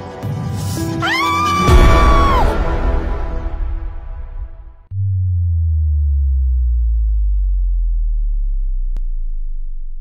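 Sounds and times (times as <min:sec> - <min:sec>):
deep synthesized bass tone falling: 0:04.4 - 0:10.0.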